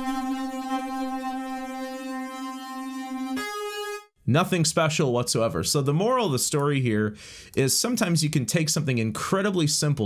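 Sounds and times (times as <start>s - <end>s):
synthesizer lead steady note: 0.0s - 4.1s.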